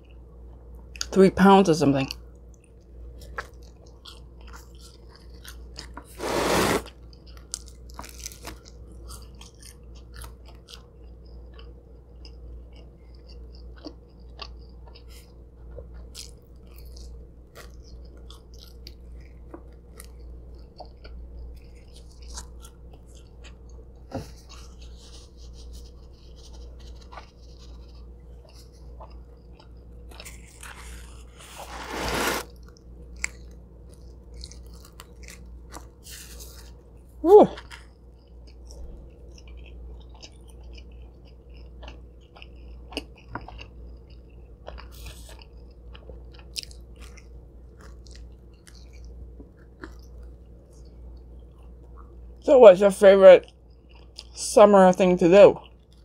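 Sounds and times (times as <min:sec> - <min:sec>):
low steady hum: 0:00.0 - 0:56.0
chewing and biting pizza: 0:02.0 - 0:52.4, 0:53.4 - 0:54.4, 0:55.1 - 0:56.0.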